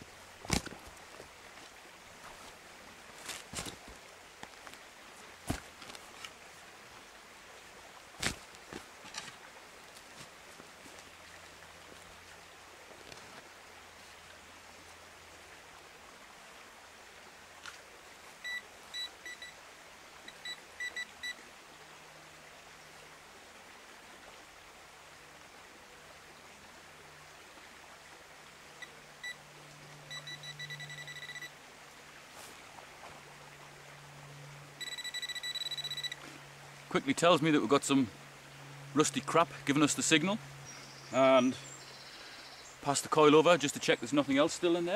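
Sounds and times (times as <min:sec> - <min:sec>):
metal detector beeping: 0:18.4 - 0:19.6, 0:20.3 - 0:21.4, 0:30.1 - 0:31.5, 0:34.8 - 0:36.2
metal detector steady tone: 0:18.4 - 0:19.6, 0:20.2 - 0:21.4, 0:30.1 - 0:31.6, 0:34.8 - 0:36.2.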